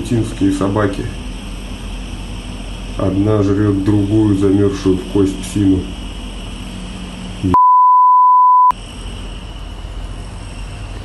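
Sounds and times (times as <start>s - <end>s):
censor beep: 7.5s - 8.7s.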